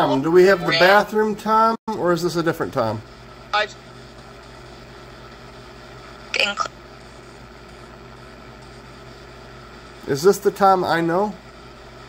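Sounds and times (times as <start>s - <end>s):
radio sweep hiss and hum: 1.9s - 12.0s.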